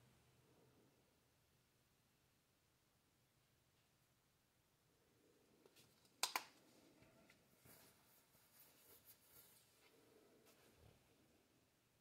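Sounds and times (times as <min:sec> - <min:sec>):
faint handling ticks and rustles: 0:05.6 - 0:11.1.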